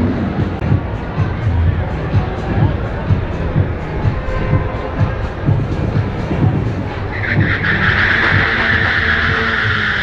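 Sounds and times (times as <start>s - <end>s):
car engine running: 1.3s - 10.0s
tyres squealing in a burnout: 3.8s - 10.0s.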